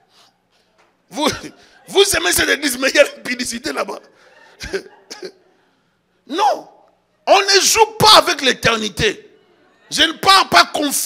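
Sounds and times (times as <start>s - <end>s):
person coughing: 4.6s - 5.4s.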